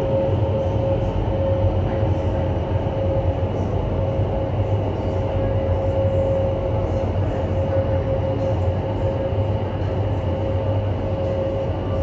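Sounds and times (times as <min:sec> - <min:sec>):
steady hum: 0:00.0 - 0:12.0
wind tunnel fans roaring: 0:00.0 - 0:12.0.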